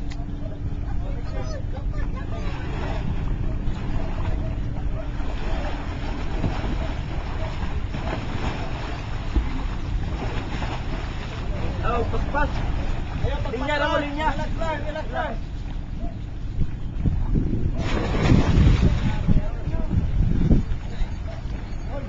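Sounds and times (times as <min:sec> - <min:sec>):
wind buffeting microphone: 0:00.0 - 0:22.0
sea water washing against rocks: 0:05.1 - 0:14.2, 0:17.8 - 0:19.4.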